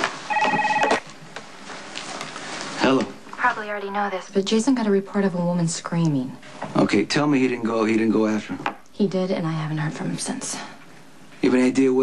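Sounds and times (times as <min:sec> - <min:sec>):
cell phone ringing: 0:00.3 - 0:01.0.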